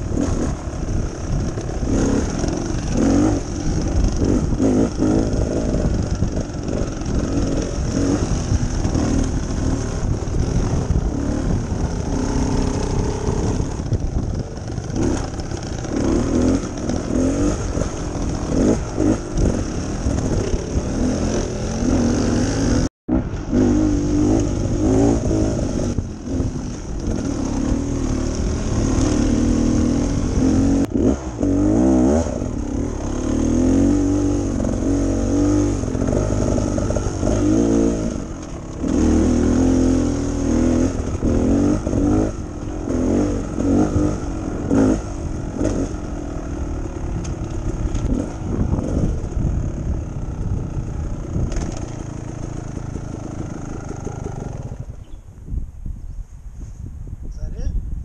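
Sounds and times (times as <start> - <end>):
dirt bike engine revving: 0.0 - 55.2
clatter from bike: 51.4 - 53.2.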